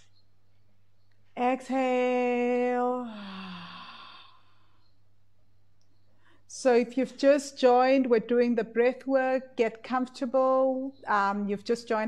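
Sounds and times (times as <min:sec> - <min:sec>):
woman sighing: 0:03.0 - 0:04.7.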